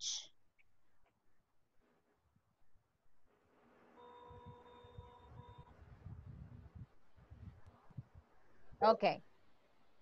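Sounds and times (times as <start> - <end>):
faint electronic tone: 4.0 - 6.8.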